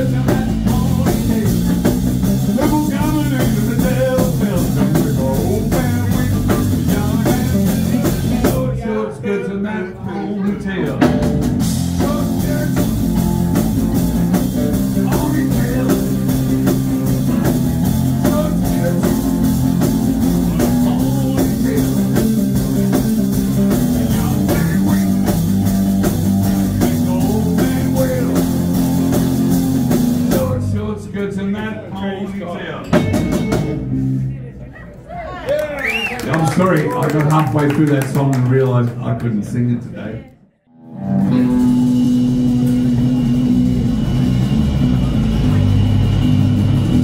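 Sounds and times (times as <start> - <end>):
rock band playing: 0.0 - 8.8, 10.4 - 31.0, 32.8 - 34.7, 40.8 - 47.0
stray guitar and bass notes: 0.0 - 34.7, 39.3 - 47.0.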